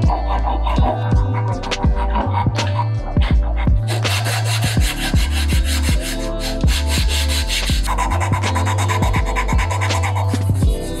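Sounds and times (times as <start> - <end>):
electronic music with kick drum: 0.0 - 11.0
rasp scraping wood: 0.0 - 11.0.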